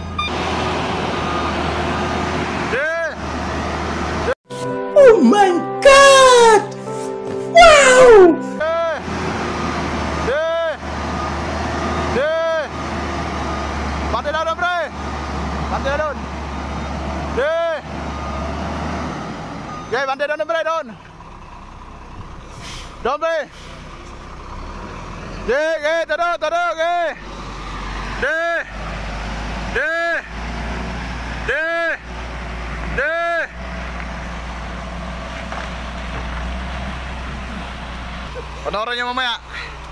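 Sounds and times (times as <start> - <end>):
rising and falling warning beep: 0.0 - 3.2, 7.6 - 20.2
truck diesel engine droning: 0.0 - 4.4, 7.6 - 39.9
person calling out: 5.0 - 6.7, 7.5 - 9.0.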